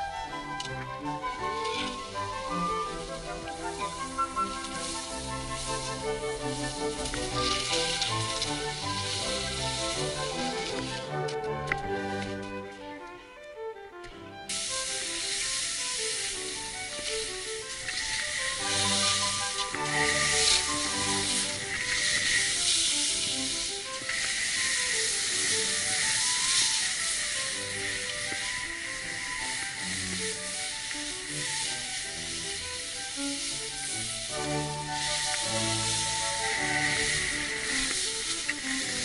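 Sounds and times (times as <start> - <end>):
skis hissing over snow: 0.0 - 13.0, 14.4 - 39.0
background music: 0.0 - 39.0.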